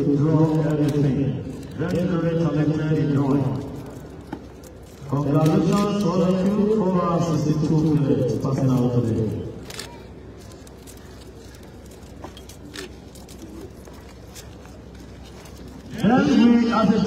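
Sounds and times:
man talking: 0:00.0 - 0:03.8, 0:05.0 - 0:09.5, 0:15.9 - 0:17.0
outdoor background noise: 0:00.0 - 0:17.0.

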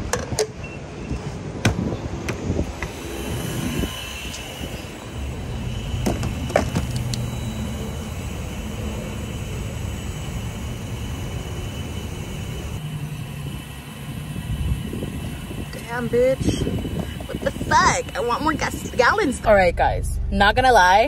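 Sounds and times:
gasoline pumping into tank: 0:02.8 - 0:12.6
gas pump nozzle clicking: 0:06.0 - 0:07.3.

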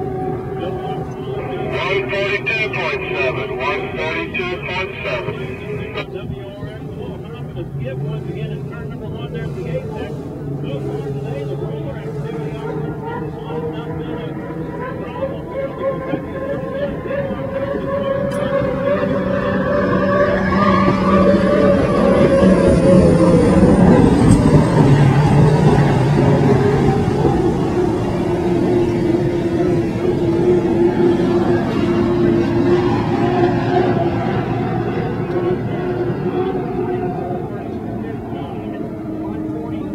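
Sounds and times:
racing boat engine passing: 0:00.0 - 0:39.9.

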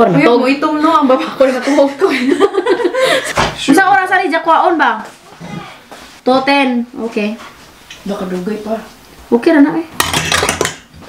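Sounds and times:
cutlery clattering against metal pot: 0:10.0 - 0:10.9.

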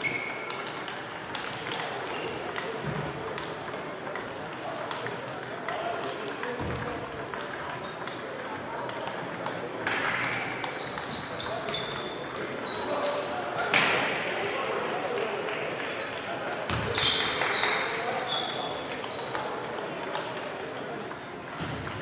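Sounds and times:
shoes squeaking: 0:00.0 - 0:03.2, 0:09.9 - 0:13.2, 0:16.1 - 0:19.4
table tennis balls clicking: 0:00.0 - 0:13.9, 0:15.2 - 0:22.0
murmur of voices: 0:00.0 - 0:22.0.

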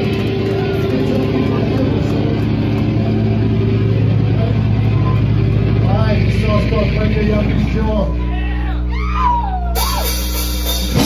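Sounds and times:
distorted guitar and bass drone: 0:00.0 - 0:11.0
person yelling: 0:08.1 - 0:10.1.

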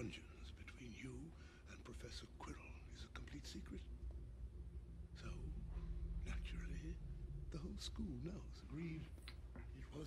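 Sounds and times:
faint whisper-like speech: 0:00.0 - 0:03.9.

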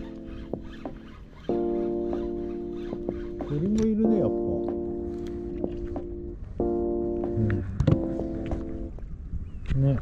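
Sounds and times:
rising and falling pitch glide: 0:00.0 - 0:08.9
electronic background music: 0:00.0 - 0:09.1.

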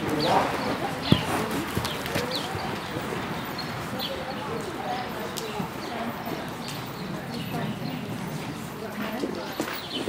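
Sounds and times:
horse hooves clip-clopping: 0:00.0 - 0:03.9
people talking: 0:00.0 - 0:10.0.

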